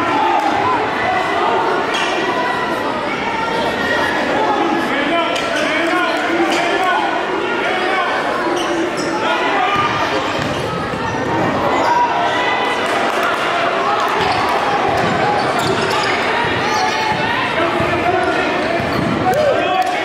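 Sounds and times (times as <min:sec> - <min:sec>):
players and crowd talking: 0:00.0 - 0:20.0.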